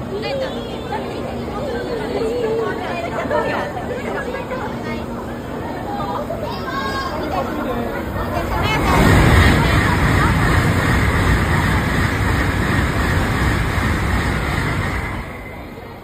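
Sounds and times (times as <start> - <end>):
people chattering: 0.0 - 16.0
train rushing past: 5.2 - 16.0.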